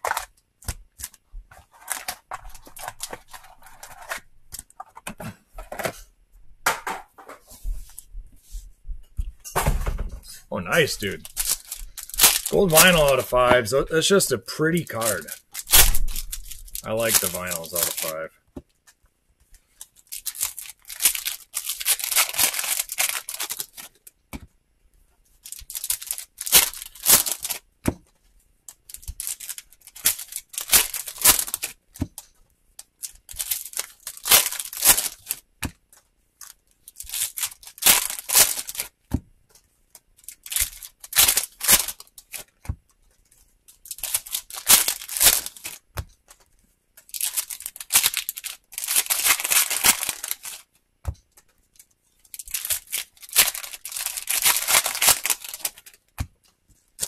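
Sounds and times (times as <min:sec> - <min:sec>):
foil wrappers tearing and crinkling: 0:01.0 - 0:04.7, 0:10.6 - 0:18.3, 0:19.7 - 0:24.0, 0:25.4 - 0:27.7, 0:28.7 - 0:35.5, 0:36.4 - 0:39.0, 0:40.2 - 0:42.6, 0:43.7 - 0:45.9, 0:47.0 - 0:50.7, 0:51.8 - 0:56.2.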